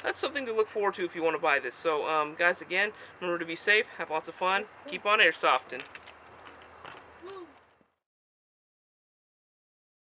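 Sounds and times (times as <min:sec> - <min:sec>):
faint outdoor background noise: 0:00.0 - 0:08.0.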